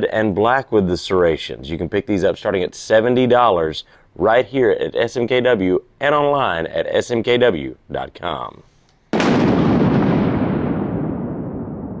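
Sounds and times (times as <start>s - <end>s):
deep cinematic boom rumble: 9.2s - 12.0s.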